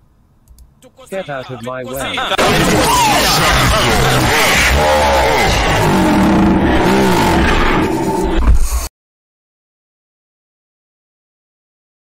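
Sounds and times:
man laughing loudly: 1.3 - 5.8
shouted word: 2.0 - 6.0.

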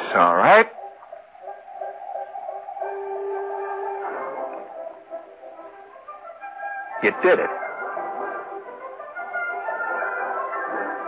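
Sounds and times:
soft woodwind background music: 0.2 - 11.0.

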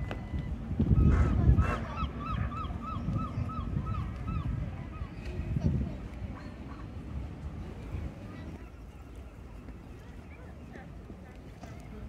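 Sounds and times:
wind rumble on microphone: 0.0 - 10.2.

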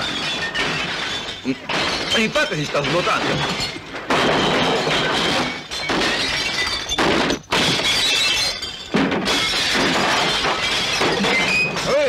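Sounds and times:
glass shattering: 0.0 - 12.0.

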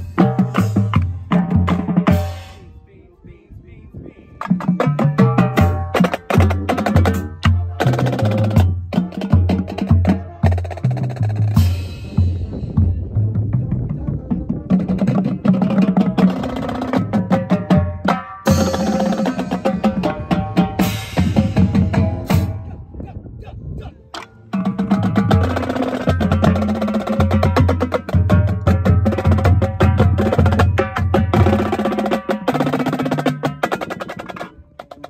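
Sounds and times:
tenor drums: 0.0 - 2.6, 4.4 - 22.8, 24.1 - 35.0.

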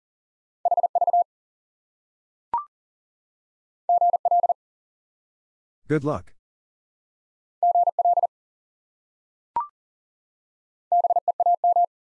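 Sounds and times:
morse code beeps: 0.7 - 1.2, 3.9 - 4.6, 7.6 - 8.3, 10.9 - 11.9.

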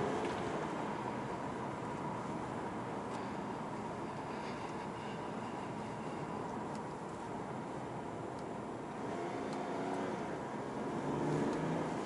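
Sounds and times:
tyre and road noise: 0.0 - 12.0
car engine accelerating: 8.7 - 12.0.

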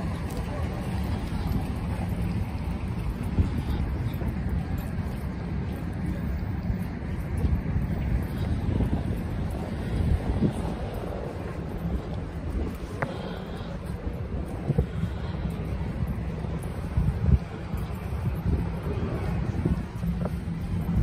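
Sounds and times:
faint street traffic: 0.0 - 21.0
wind buffeting microphone: 0.0 - 21.0.

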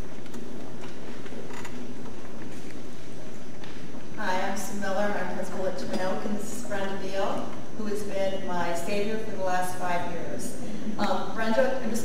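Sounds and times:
room noise in a hall: 0.0 - 12.0.

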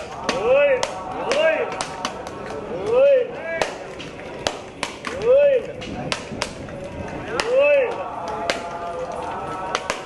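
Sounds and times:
coconuts cracking on stone: 0.0 - 3.0, 3.6 - 10.0.

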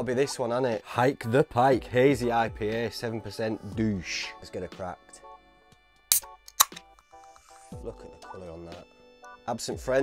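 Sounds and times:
can ring-pull cracks: 6.1 - 7.0.

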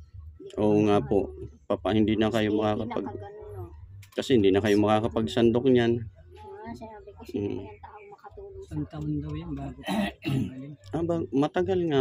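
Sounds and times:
people talking: 0.4 - 12.0
person coughing: 9.8 - 10.6.

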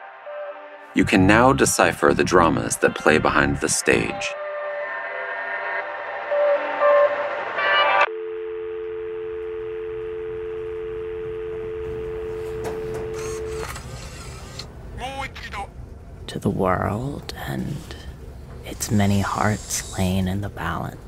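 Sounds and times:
telephone dial tone: 8.0 - 14.0.

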